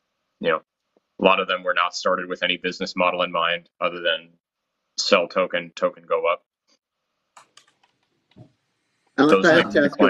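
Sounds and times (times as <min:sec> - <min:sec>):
faint clicks: 0:07.3 - 0:08.5.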